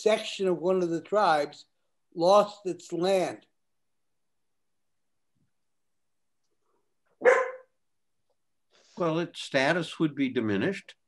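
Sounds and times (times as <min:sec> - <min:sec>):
dog barking: 0:07.2 - 0:07.8.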